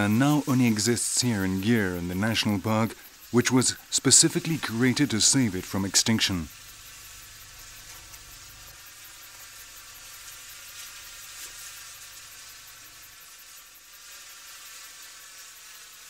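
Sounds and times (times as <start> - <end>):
outdoor ambience hiss: 0.0 - 16.0.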